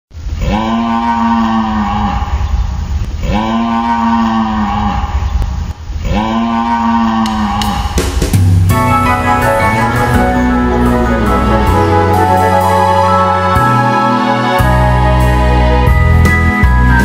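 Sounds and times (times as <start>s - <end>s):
low rumble: 7.4s - 13.4s.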